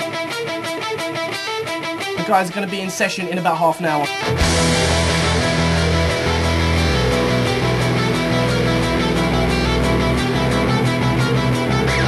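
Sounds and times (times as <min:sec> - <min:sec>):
electric guitar: 0:00.0 - 0:12.0
bass guitar: 0:04.2 - 0:12.0.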